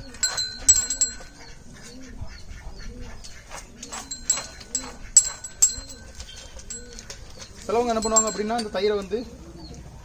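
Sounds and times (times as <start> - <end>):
bell-like ringing: 0.0 - 1.6, 4.0 - 9.2
birds cooing: 0.0 - 10.0.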